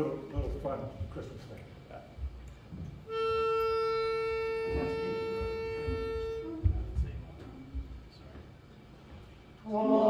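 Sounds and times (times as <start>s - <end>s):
pitch pipe reedy tone: 3.0s - 7.9s
faint lower note: 3.1s - 8.0s.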